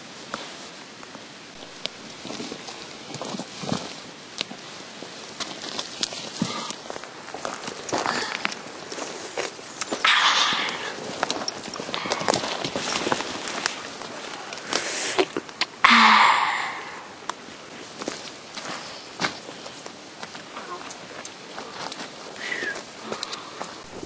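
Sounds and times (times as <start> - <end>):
branches rustling and crackling: 0.0 - 15.8, 16.6 - 24.0.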